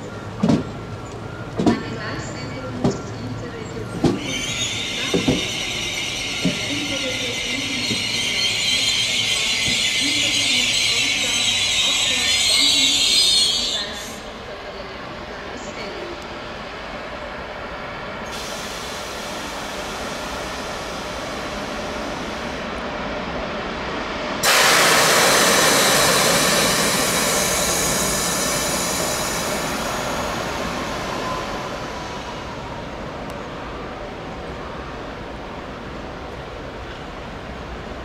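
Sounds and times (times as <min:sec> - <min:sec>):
train rail rumble: 0:00.0 - 0:38.0
passing train wheel and air rush: 0:00.3 - 0:38.0.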